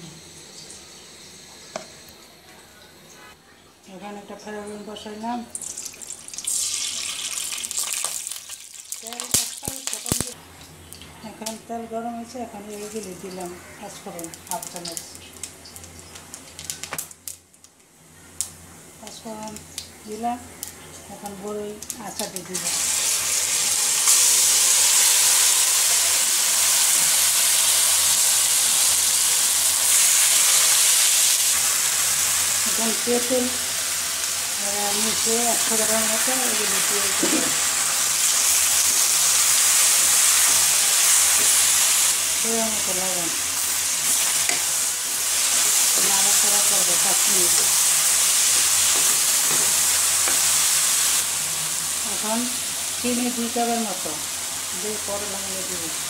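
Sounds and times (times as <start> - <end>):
fruit sizzling in hot oil: 0.0 - 2.3, 4.3 - 17.8, 18.4 - 56.0.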